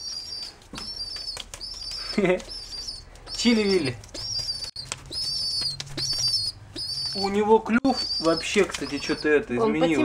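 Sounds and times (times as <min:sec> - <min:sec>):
young pigeon squeaking: 0:00.0 - 0:10.0
wings flapping: 0:00.1 - 0:07.2, 0:07.9 - 0:09.6.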